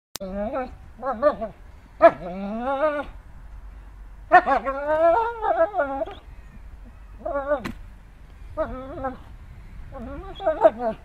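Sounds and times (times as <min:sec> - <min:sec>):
dog whining: 0:00.2 - 0:03.2, 0:04.3 - 0:06.2, 0:06.8 - 0:07.7, 0:08.6 - 0:09.3, 0:09.9 - 0:11.0.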